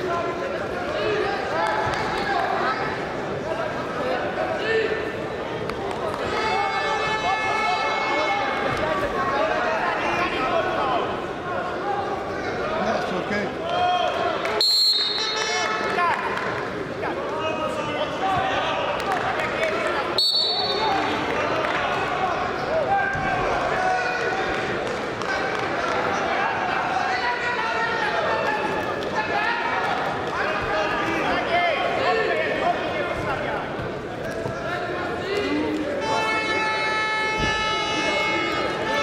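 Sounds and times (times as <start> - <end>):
arena noise: 0.0 - 39.0.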